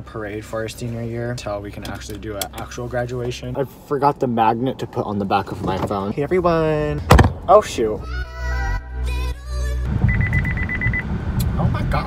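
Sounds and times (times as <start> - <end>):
road noise inside car: 0.0 - 8.0, 9.8 - 12.0
background music: 7.5 - 9.9
car alert beeping rapidly: 10.0 - 11.1.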